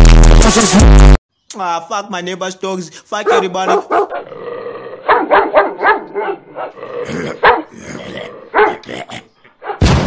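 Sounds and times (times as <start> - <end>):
dog barking: 3.2 - 4.3, 5.0 - 6.8, 7.4 - 7.7, 8.5 - 8.8, 9.6 - 9.8.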